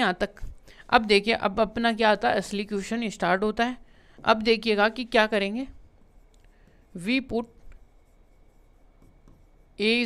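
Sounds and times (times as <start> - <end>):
stylus scratching on screen: 4.3 - 10.0.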